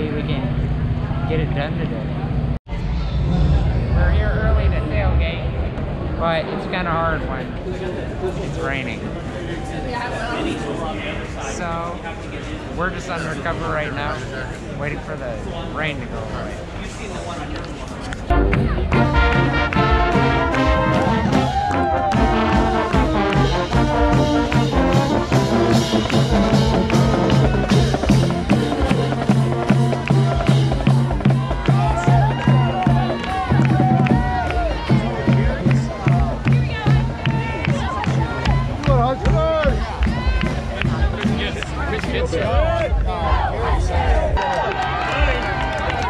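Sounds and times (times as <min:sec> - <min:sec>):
crowd voices: 0:00.0 - 0:46.0
brass band playing: 0:18.3 - 0:38.2.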